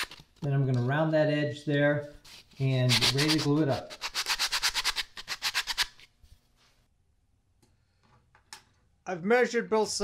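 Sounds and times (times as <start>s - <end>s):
sandpaper rubbing on wood: 2.3s - 6.0s.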